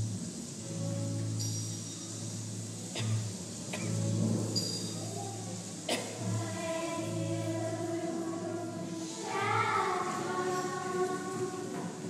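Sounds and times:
children's choir singing: 5.9 - 12.0.

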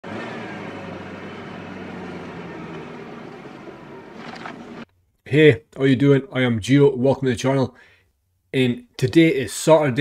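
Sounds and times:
van engine and road noise: 0.0 - 4.9.

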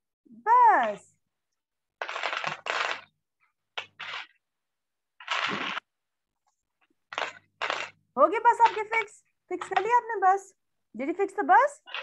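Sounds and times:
video call audio: 0.3 - 1.4, 5.2 - 12.0
toy pieces rattling in a box: 7.2 - 8.0.

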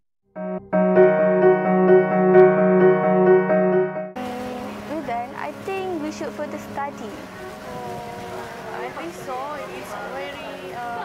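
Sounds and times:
piano music: 0.3 - 11.0.

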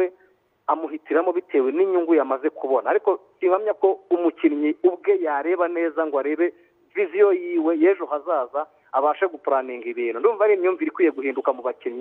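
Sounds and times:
man talking over telephone: 0.7 - 12.0.

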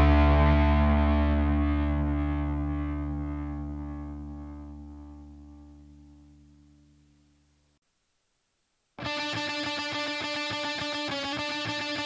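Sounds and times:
distorted electric guitar chord: 0.0 - 6.9, 9.0 - 12.0.

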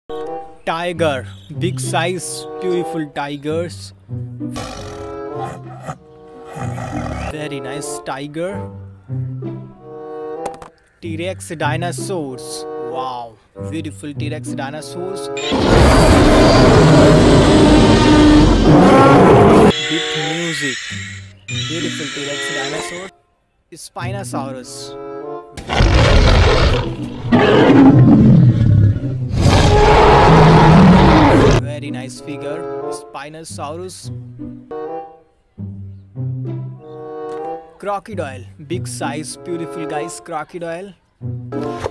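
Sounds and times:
background music: 0.1 - 41.9
tiger roaring: 4.6 - 7.4, 15.4 - 19.7, 25.6 - 31.6.

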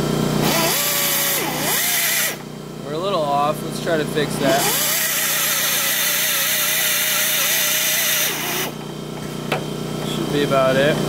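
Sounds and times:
power drill grinding into steel: 0.4 - 2.4, 4.4 - 8.8.

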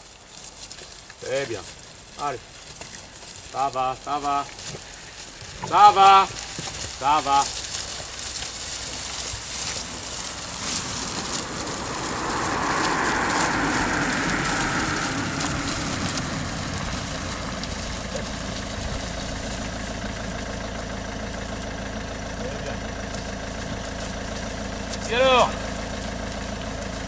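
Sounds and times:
vehicle engine idling: 0.0 - 27.0
broad rushing noise: 8.8 - 19.6.

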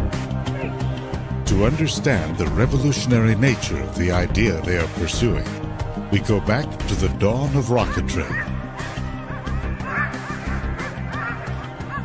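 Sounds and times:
sled dogs yelping: 7.8 - 12.0.

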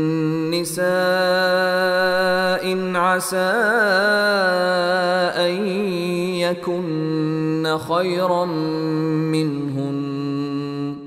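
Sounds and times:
man chanting recitation: 0.0 - 11.0.

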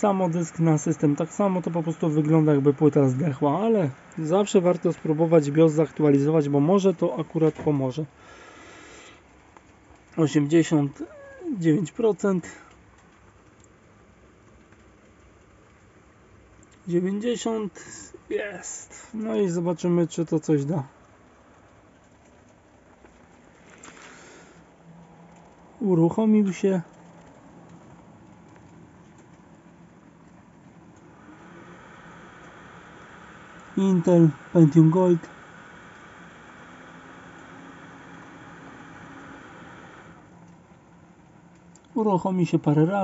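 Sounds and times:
desktop computer running: 0.0 - 43.0
phone rustling: 21.8 - 25.8.

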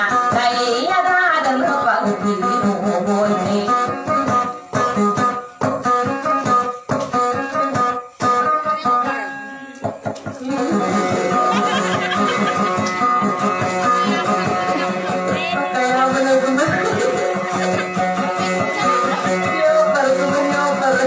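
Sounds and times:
person singing: 0.0 - 4.5, 8.6 - 21.0
acoustic guitar playing: 0.0 - 21.0.

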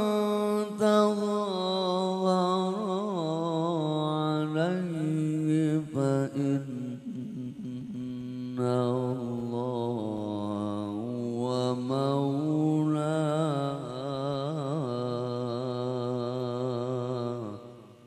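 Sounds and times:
man chanting over loudspeakers: 0.0 - 17.8.

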